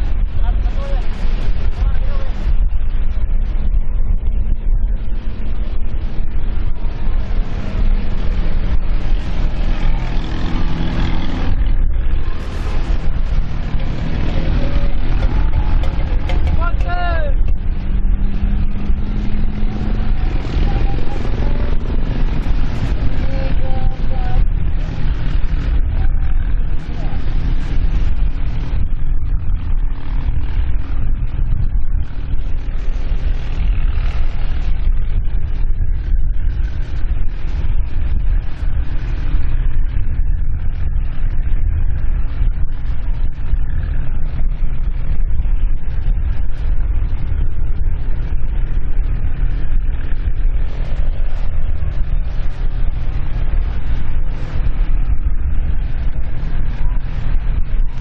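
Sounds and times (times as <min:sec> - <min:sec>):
wind rumble on microphone: 0:00.0 - 0:58.0
racing boat engines: 0:00.1 - 0:40.0
people's voices: 0:00.2 - 0:02.6, 0:06.7 - 0:17.6, 0:19.7 - 0:24.9, 0:25.8 - 0:27.8.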